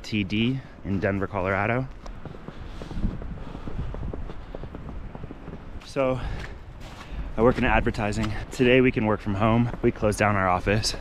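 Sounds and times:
footsteps crunching through snow: 0:00.0 - 0:11.0.

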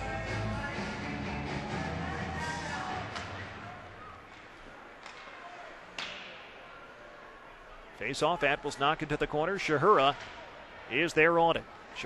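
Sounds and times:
arena rock music: 0:00.0 - 0:03.1
arena crowd noise: 0:00.0 - 0:12.0.

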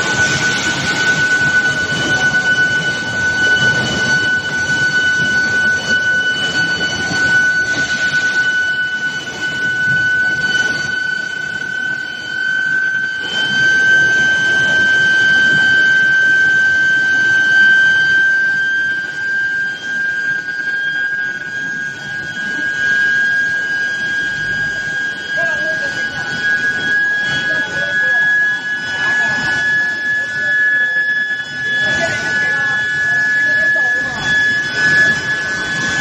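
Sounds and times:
high-pitched electrical whine: 0:00.0 - 0:36.0.

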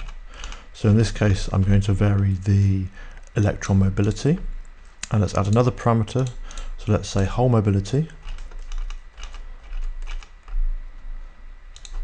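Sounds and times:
low electrical hum: 0:00.0 - 0:12.0
computer controls clicking: 0:01.9 - 0:07.0, 0:07.8 - 0:10.6, 0:11.7 - 0:12.0.

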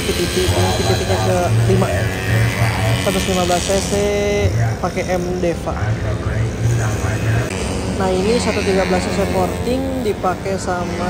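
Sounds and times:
race motorcycles engine drone: 0:00.0 - 0:11.0.

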